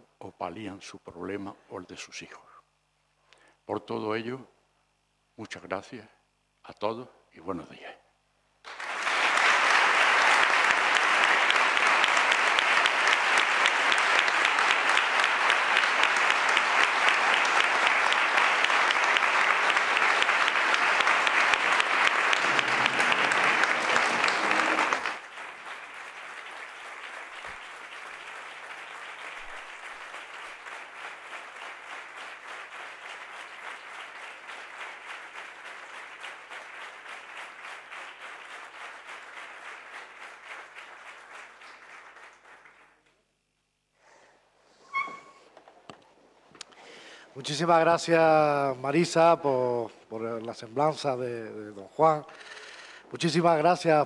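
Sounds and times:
audience applauding: 0:08.6 - 0:43.1.

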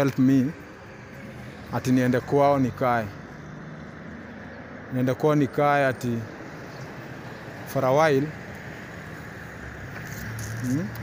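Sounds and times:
man speaking: 0:01.7 - 0:03.2, 0:04.9 - 0:06.3, 0:07.7 - 0:08.4, 0:10.6 - 0:11.0.

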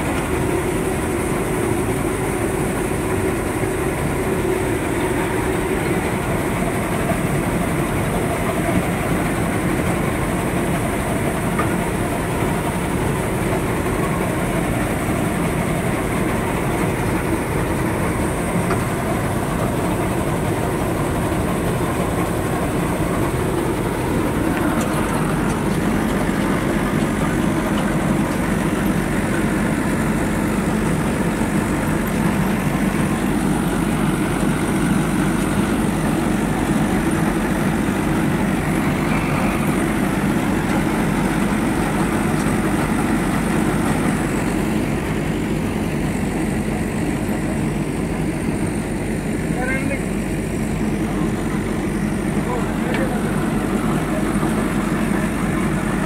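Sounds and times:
combine harvester engine running: 0:00.0 - 0:56.0.

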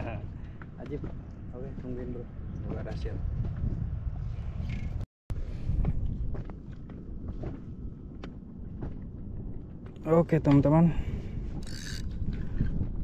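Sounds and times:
wind rumble on microphone: 0:00.0 - 0:13.0
fishing tackle clicks and knocks: 0:11.6 - 0:12.4.

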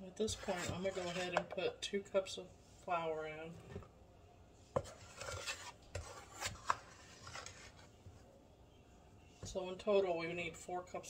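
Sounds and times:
metal cup scraping through flour: 0:00.3 - 0:01.4, 0:04.8 - 0:07.9.

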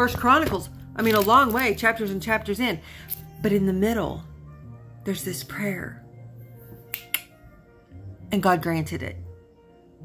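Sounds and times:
soft background music: 0:00.0 - 0:10.0
fingers snapping: 0:06.8 - 0:07.4.

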